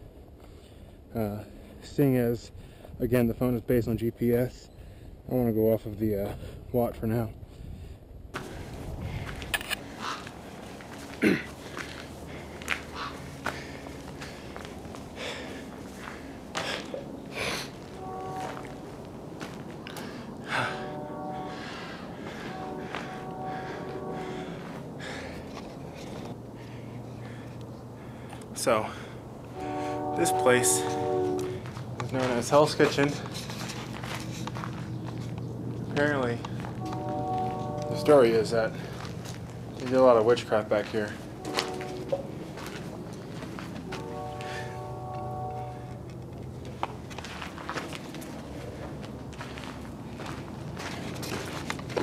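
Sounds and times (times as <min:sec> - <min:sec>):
footsteps on rocky ground: 0:08.4 - 0:20.2, 0:31.4 - 0:37.8, 0:38.8 - 0:40.1, 0:40.7 - 0:44.6, 0:46.0 - 0:52.0.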